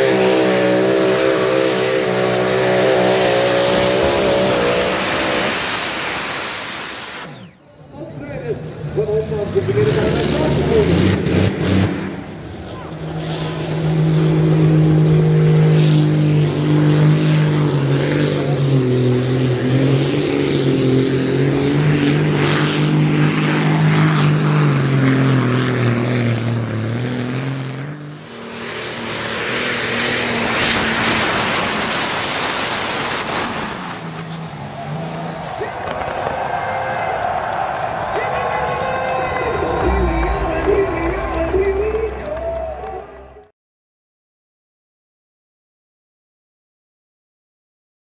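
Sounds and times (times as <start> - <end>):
tractor engine under full load: 0.0 - 36.4.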